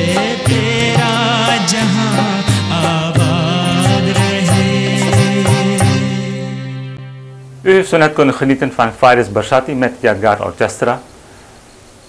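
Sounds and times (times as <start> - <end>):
steady drum beat: 0.0 - 6.3.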